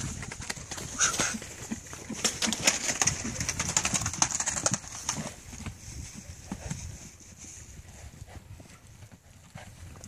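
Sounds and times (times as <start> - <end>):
horse hooves crunching in snow: 0.0 - 10.0.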